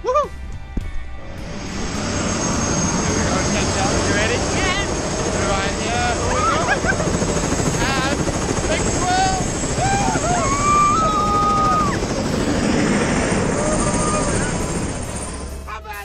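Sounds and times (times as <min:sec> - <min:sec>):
people whooping and laughing: 0:00.0 - 0:00.3, 0:06.2 - 0:07.2, 0:09.7 - 0:12.1, 0:13.4 - 0:14.7
helicopter rotor and engine: 0:01.0 - 0:16.0.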